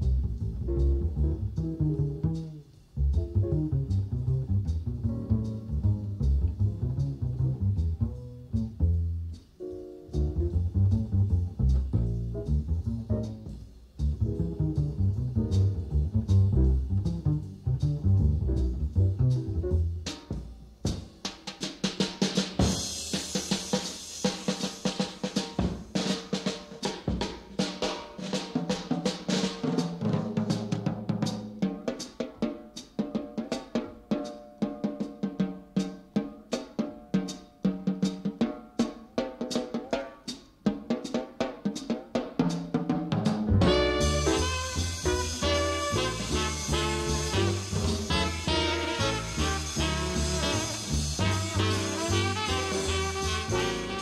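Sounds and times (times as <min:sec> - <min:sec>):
jazz double bass solo: 0:00.0 - 0:21.2, 0:42.4 - 0:54.0
swing drum solo: 0:00.0 - 0:54.0.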